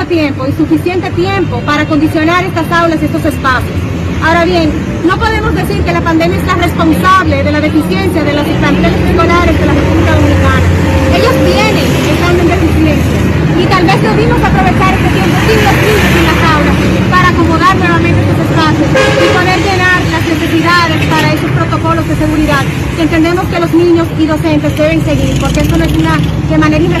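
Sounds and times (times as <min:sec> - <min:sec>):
street traffic: 0:00.0 - 0:27.0
woman talking: 0:00.0 - 0:27.0
car horn honking: 0:18.9 - 0:19.8.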